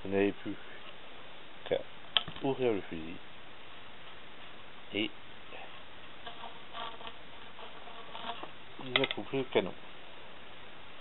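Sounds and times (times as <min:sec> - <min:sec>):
man speaking: 0:00.0 - 0:00.8, 0:01.7 - 0:03.2, 0:08.8 - 0:09.8
faint small sounds: 0:00.0 - 0:11.0
recording hiss: 0:00.0 - 0:11.0.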